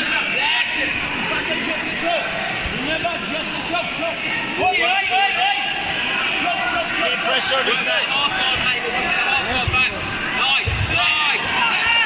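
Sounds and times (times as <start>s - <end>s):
people shouting: 4.0s - 12.0s.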